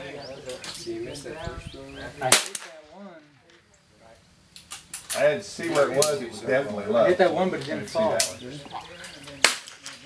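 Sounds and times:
muffled voices talking: 0.0s - 10.0s
loud pistol shot: 2.2s - 2.8s, 9.4s - 9.9s.

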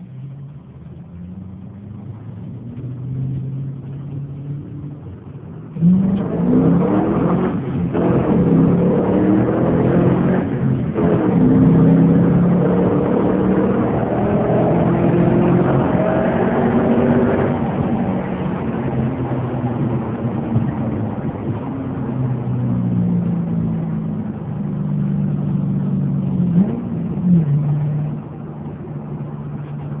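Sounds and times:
car engine accelerating: 0.0s - 30.0s.

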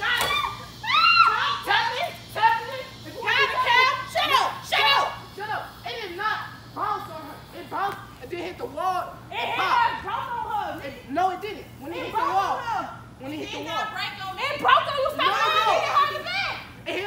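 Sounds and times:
young people talking and calling: 0.0s - 17.0s.

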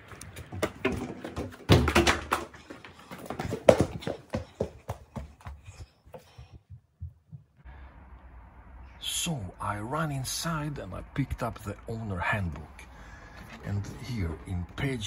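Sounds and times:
hurried footsteps on tiled floor: 0.0s - 7.6s.

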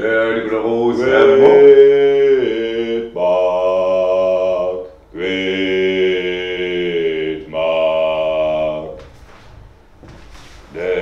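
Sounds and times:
man chanting long notes: 0.0s - 9.0s, 10.7s - 11.0s.

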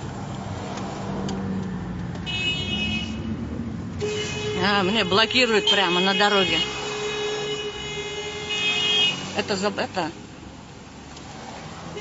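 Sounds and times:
car horn sounding: 2.2s - 3.4s, 4.0s - 9.8s.

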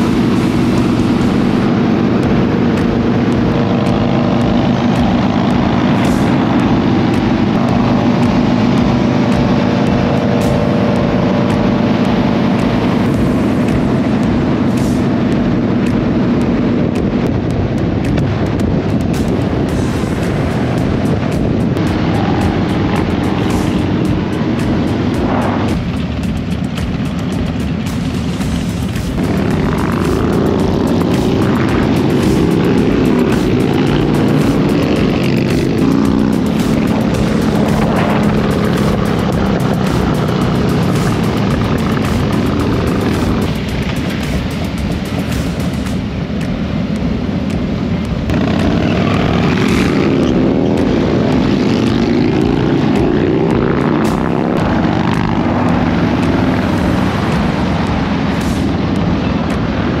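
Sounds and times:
motorcycle engines revving: 0.0s - 60.0s
music playing: 0.0s - 60.0s.

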